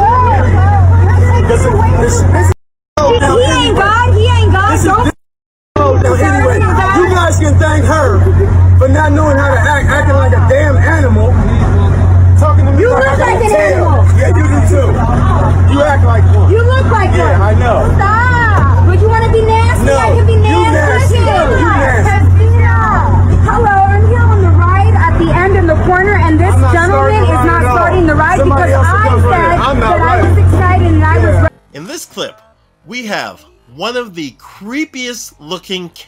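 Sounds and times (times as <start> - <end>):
loud low hum: 0.0 - 5.2, 5.8 - 35.4
many voices talking and calling: 0.0 - 5.2, 5.8 - 36.0.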